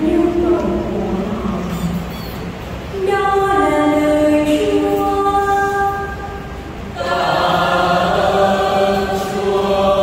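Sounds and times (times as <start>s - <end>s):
choir singing in harmony: 6.9s - 10.0s.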